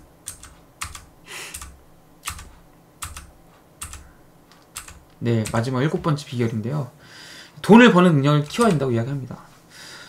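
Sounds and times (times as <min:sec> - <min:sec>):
computer keyboard key presses: 0:00.2 - 0:05.7, 0:08.4 - 0:08.8
short breathy hiss: 0:01.3 - 0:01.7.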